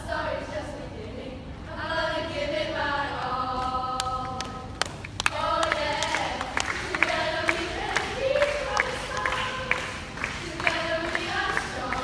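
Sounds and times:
girls singing a chord: 0.0s - 12.0s
handclaps: 3.6s - 12.0s.

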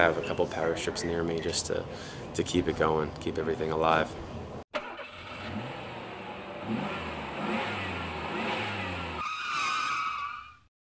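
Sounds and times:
engine revving: 4.8s - 9.3s
high wavering squeal: 9.2s - 10.7s.

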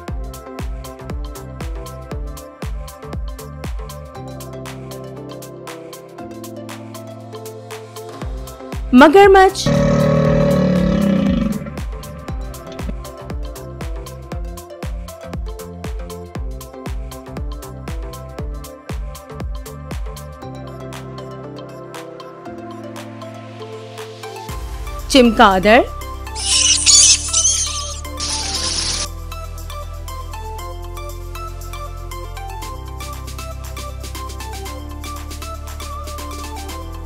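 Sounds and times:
background music with steady beat: 0.0s - 9.5s, 10.6s - 26.4s, 29.0s - 37.0s
deep animal roar: 9.6s - 13.0s
bat squeaks and chattering: 26.4s - 29.1s.

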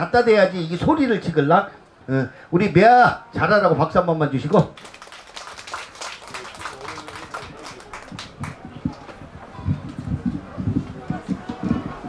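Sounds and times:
hand claps: 4.6s - 9.2s.

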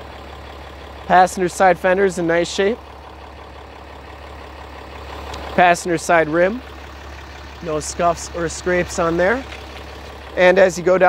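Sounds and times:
diesel engine idling: 0.0s - 11.0s.

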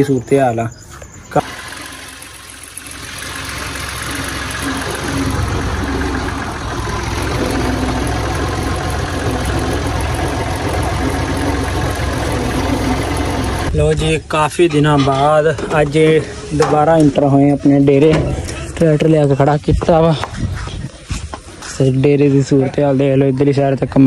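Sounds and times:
tractor diesel engine running: 1.3s - 14.3s.

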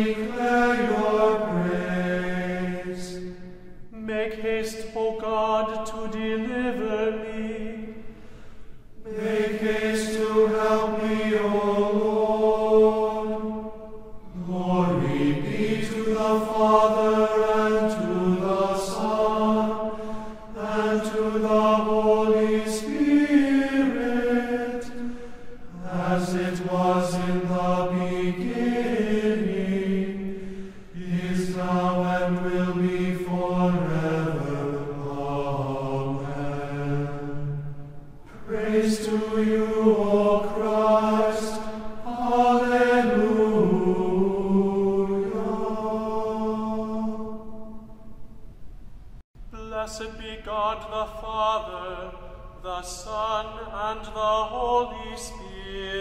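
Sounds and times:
person chanting: 0.0s - 8.2s, 9.0s - 47.8s, 49.5s - 56.0s.

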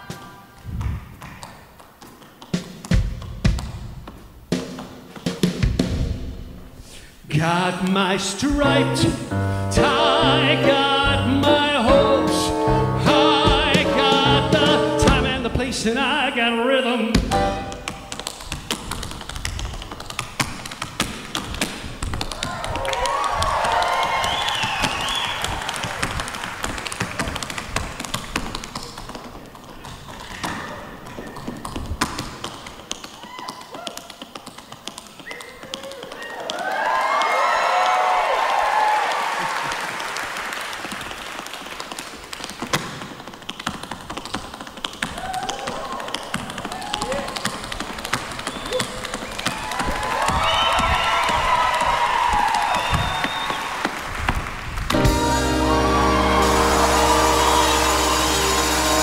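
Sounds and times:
tap shoes on wooden floor: 17.2s - 36.2s, 41.8s - 55.1s
audience whooping and cheering: 22.3s - 26.8s, 35.3s - 41.0s, 45.2s - 47.4s, 48.6s - 59.0s.

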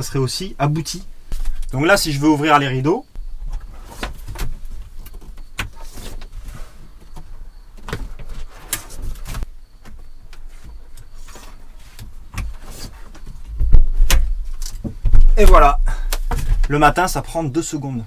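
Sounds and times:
heavy thump: 13.5s - 16.8s.

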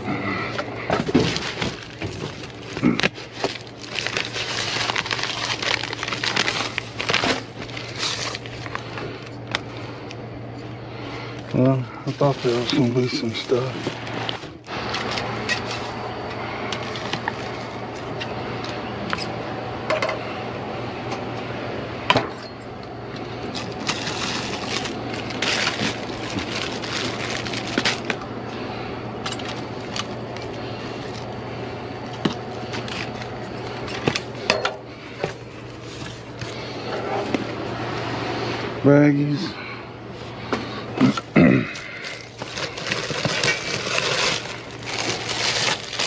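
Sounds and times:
steady low hum: 0.0s - 46.0s
plastic bags crinkling: 0.7s - 9.6s, 11.4s - 15.9s, 16.8s - 17.7s, 23.4s - 28.2s, 41.8s - 46.0s
cardboard shifting: 0.8s - 9.0s, 11.6s - 15.9s, 23.5s - 28.2s, 42.0s - 46.0s.

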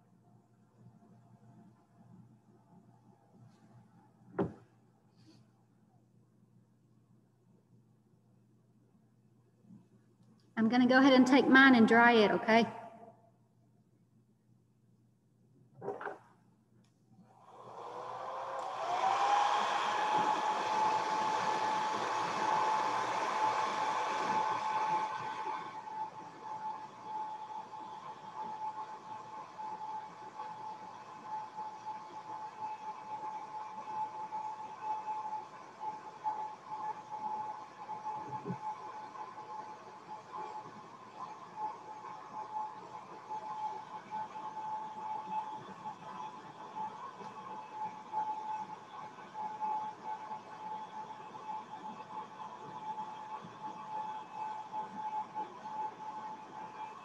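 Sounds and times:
hair dryer air rush: 17.3s - 29.9s
hair dryer motor whine: 17.4s - 30.8s.

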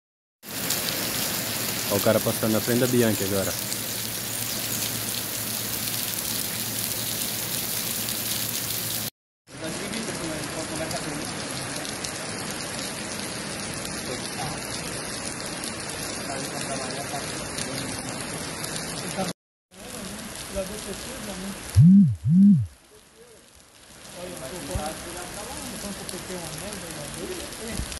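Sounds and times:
heavy rain: 0.4s - 21.9s, 22.7s - 27.9s
running floodwater: 0.4s - 27.9s
loud low blasts: 21.8s - 22.7s.

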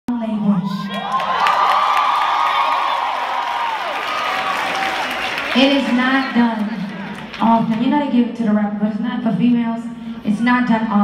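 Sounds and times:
concert audience cheering: 0.9s - 7.3s.

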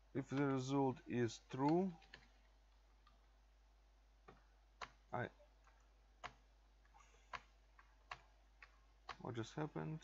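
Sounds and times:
computer keyboard key clicks: 5.7s - 6.4s, 7.3s - 9.3s.

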